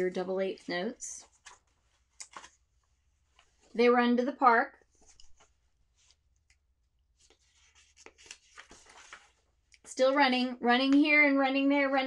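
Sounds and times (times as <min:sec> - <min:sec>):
paper pages rustling: 0:01.2 - 0:03.7, 0:04.9 - 0:06.3, 0:07.1 - 0:10.1.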